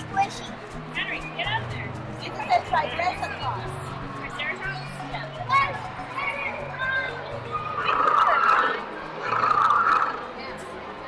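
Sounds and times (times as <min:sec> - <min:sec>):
animatronic dinosaur roar: 0:07.8 - 0:10.3.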